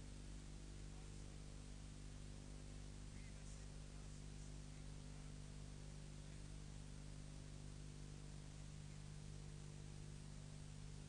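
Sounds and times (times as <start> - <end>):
low electrical hum: 0.0 - 11.0
faint hiss: 2.5 - 11.0.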